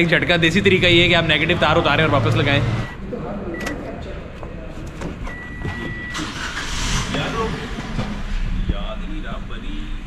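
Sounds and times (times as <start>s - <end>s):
car engine cranking: 5.2s - 8.5s.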